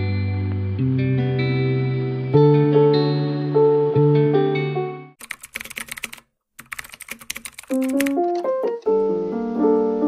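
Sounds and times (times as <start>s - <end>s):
keyboard or piano music: 2.3s - 10.0s
keyboard typing clicks: 5.2s - 8.9s
background music: 7.7s - 10.0s.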